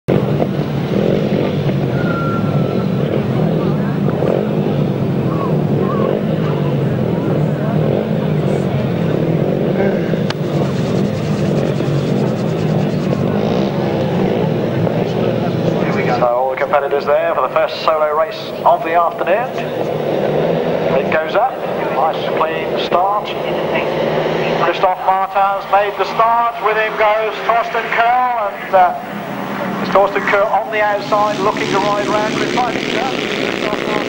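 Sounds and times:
motorcycle engines running: 0.1s - 34.0s.

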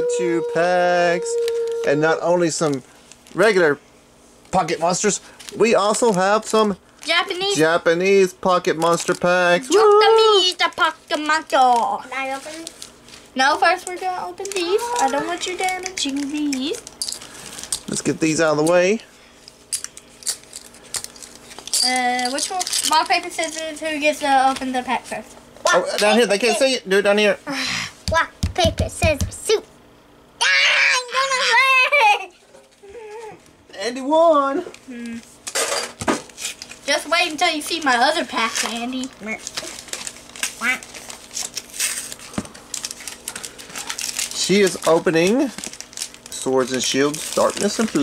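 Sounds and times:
foil wrapper crinkling: 1.4s - 3.8s, 4.4s - 25.0s, 36.2s - 48.0s.

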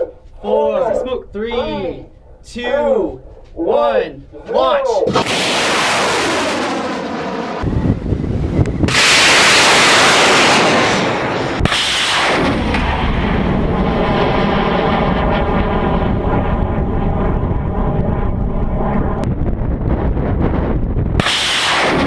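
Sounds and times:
rocket engine roaring: 4.3s - 22.0s.

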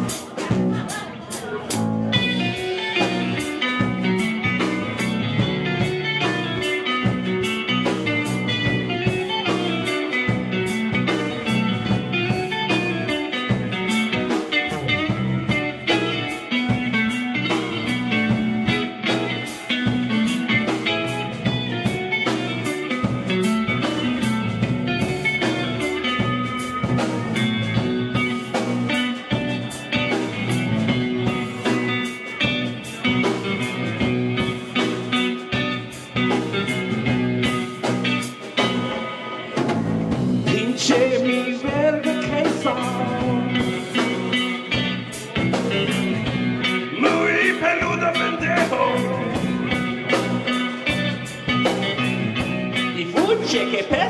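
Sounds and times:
drum kit: 0.0s - 54.0s
electric bass: 0.0s - 54.0s
electric guitar: 0.0s - 54.0s.

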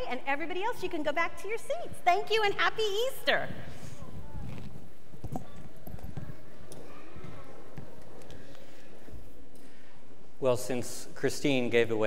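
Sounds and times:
children's footsteps on carpet: 3.7s - 9.3s
children chattering: 5.3s - 9.0s.

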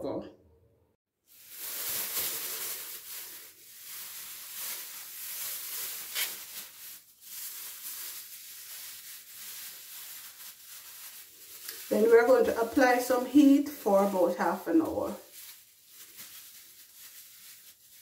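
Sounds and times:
plastic cap crinkling: 1.4s - 18.0s.

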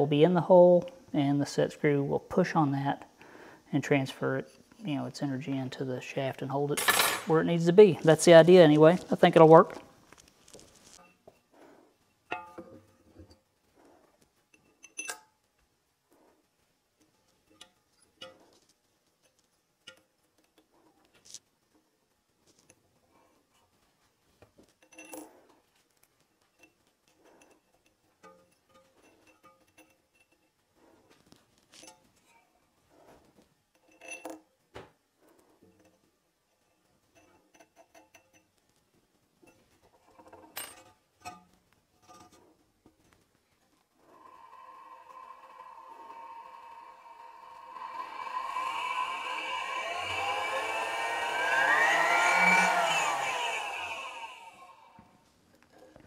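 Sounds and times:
light metal clicks and clinks: 14.5s - 15.6s, 24.7s - 30.7s, 33.7s - 34.6s
grinder motor whine: 44.1s - 55.1s.

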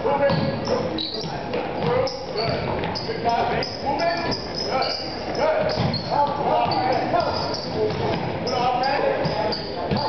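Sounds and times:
voices echoing: 0.0s - 10.0s
basketball bouncing on hardwood floor: 0.3s - 0.6s, 1.2s - 3.1s, 5.6s - 8.4s, 9.2s - 10.0s.

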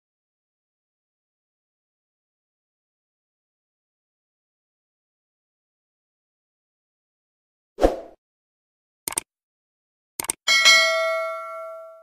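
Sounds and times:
click sound effects: 9.1s - 9.3s, 10.2s - 10.4s
bright bell ding: 10.5s - 12.0s.

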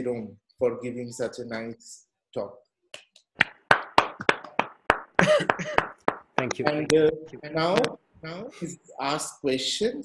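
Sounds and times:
hand clapping: 2.9s - 7.0s.

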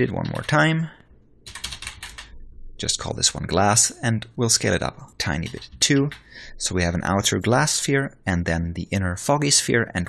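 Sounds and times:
keyboard typing: 0.2s - 0.6s, 1.4s - 2.4s, 5.3s - 6.4s.

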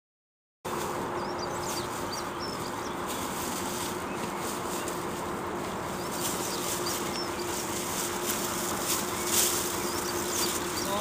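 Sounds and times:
low background hum: 0.7s - 11.0s
small birds chirping: 0.7s - 11.0s.

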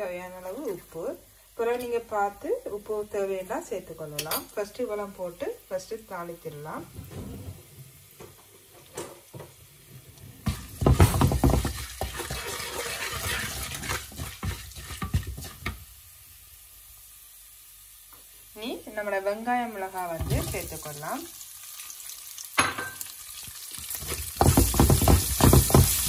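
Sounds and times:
seeds sizzling in oil: 0.0s - 7.0s, 7.7s - 26.0s
wooden spatula scraping a pan: 9.9s - 15.8s, 20.2s - 20.9s, 23.9s - 26.0s.

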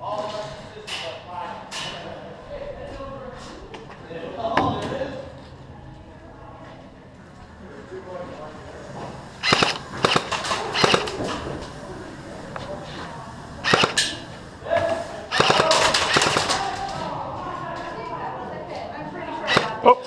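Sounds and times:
airsoft guns firing: 9.4s - 11.4s, 13.6s - 14.3s, 15.3s - 17.0s, 19.5s - 19.8s.

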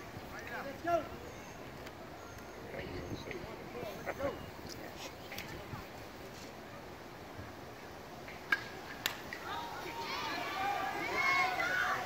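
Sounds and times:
distant voices calling out: 0.0s - 7.8s.

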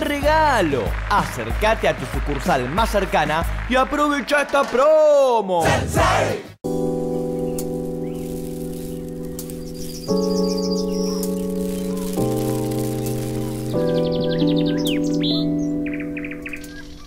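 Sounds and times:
birds chirping: 7.0s - 17.0s.

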